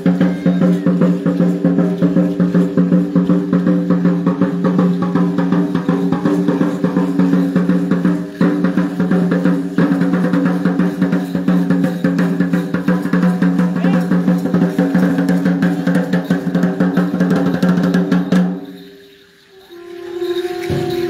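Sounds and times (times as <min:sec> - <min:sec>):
drums beating fast: 0:00.0 - 0:18.9, 0:19.8 - 0:21.0.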